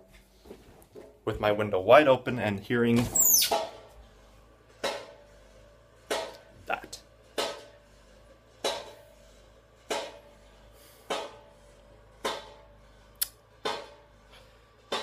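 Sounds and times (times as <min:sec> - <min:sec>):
hammer strikes with metallic ring: 0:11.1 - 0:11.5.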